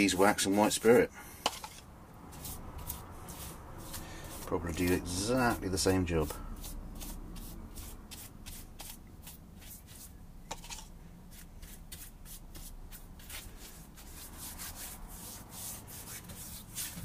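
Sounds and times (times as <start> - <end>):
brush scrubbing a surface: 0.0 - 17.0.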